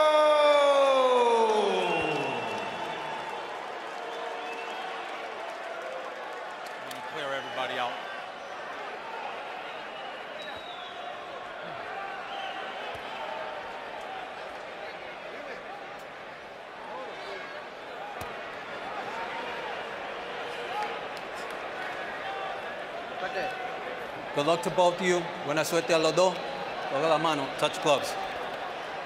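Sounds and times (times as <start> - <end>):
arena crowd voices calling out: 0.0 - 15.8.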